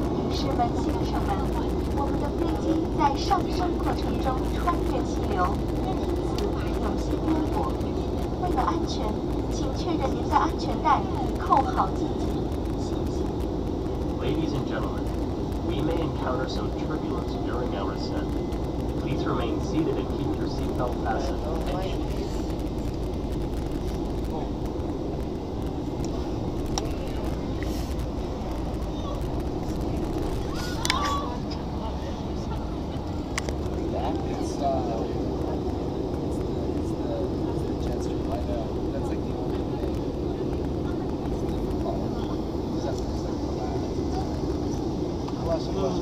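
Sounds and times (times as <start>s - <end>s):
faint voices: 0.0s - 46.0s
jet engines roaring in cabin: 0.0s - 46.0s.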